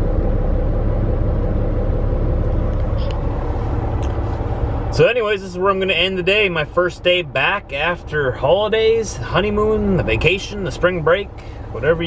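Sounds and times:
truck diesel engine rumble: 0.0s - 12.0s.

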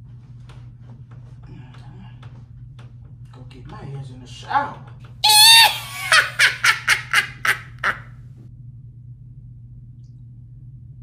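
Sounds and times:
high-pitched voice yelping: 5.2s - 6.7s.

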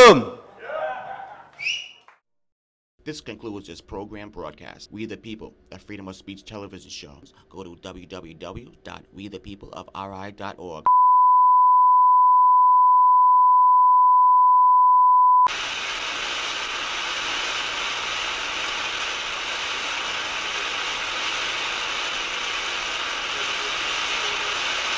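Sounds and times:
steady test tone beep: 10.9s - 15.5s
tv static hiss: 15.5s - 24.9s.

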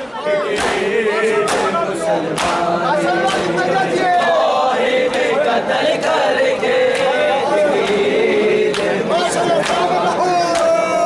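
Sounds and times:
men chanting a lament: 0.0s - 11.0s
hands slapping bare chests: 0.5s - 0.9s, 1.5s - 2.6s.

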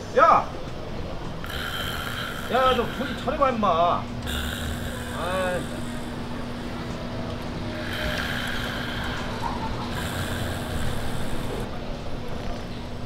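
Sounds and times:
constant hum: 0.0s - 13.0s.

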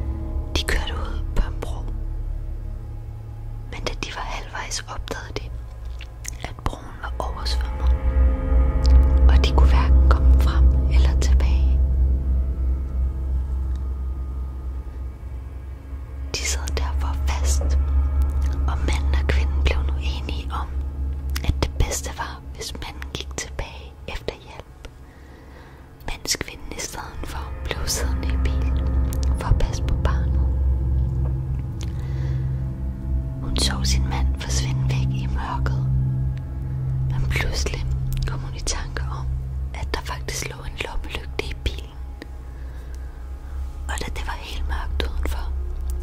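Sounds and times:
low droning music: 0.0s - 46.0s
person whispering: 0.5s - 1.9s, 3.7s - 8.0s, 8.9s - 11.8s, 16.3s - 17.8s, 18.5s - 24.9s, 26.0s - 30.6s, 33.4s - 36.0s, 37.0s - 42.0s, 43.8s - 45.6s.

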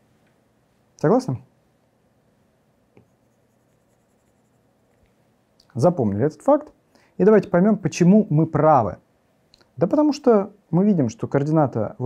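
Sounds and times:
stylus scratching on glass screen: 3.0s - 4.8s.

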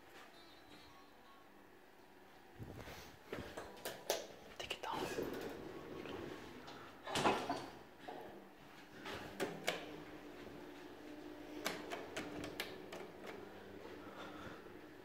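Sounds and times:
elevator doors sliding: 5.0s - 7.9s.

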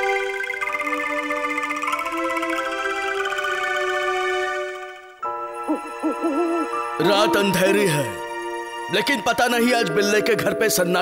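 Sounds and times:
held music chord: 5.2s - 8.6s
cartoon owl hoot: 5.6s - 6.8s.

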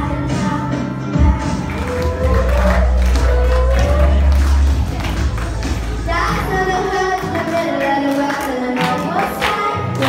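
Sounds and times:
girls singing into microphones: 0.0s - 10.0s
karaoke backing track with bass: 0.0s - 10.0s.

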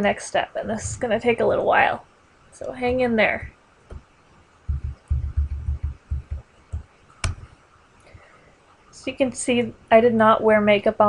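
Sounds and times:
low dull thumps: 2.7s - 4.1s, 4.7s - 7.6s.

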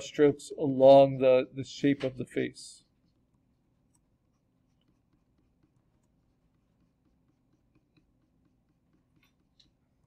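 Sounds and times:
stylus ticking and scratching: 2.8s - 10.0s.

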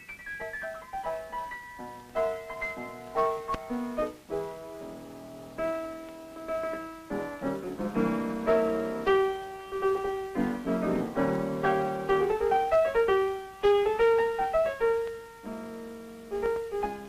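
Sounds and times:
film score piano music: 0.0s - 17.0s.

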